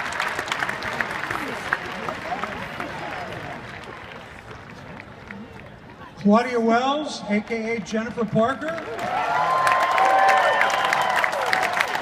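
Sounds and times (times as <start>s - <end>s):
audience applause: 0.0s - 5.6s, 8.7s - 12.0s
murmur of crowd voices: 0.0s - 9.6s.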